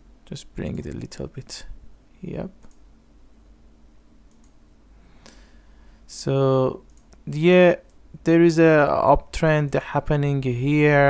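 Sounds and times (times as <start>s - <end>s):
faint low hum: 0.0s - 11.0s
computer mouse clicks: 2.6s - 2.8s, 4.3s - 4.6s, 6.9s - 7.2s.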